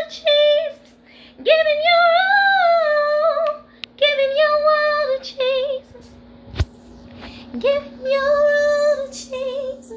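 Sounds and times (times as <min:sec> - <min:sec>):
woman singing gospel: 0:00.0 - 0:06.2, 0:07.5 - 0:09.9.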